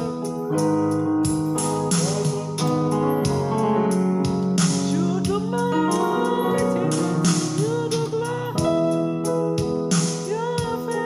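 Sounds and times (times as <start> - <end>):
drum rhythm: 0.0 - 11.0
electronic keyboard gospel chords: 0.0 - 11.0.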